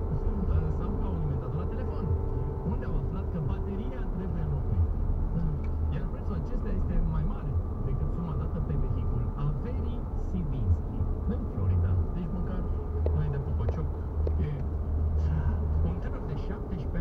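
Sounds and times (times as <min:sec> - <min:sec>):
people talking: 0:00.0 - 0:14.6, 0:15.2 - 0:17.0
car driving drone inside cabin: 0:00.0 - 0:17.0.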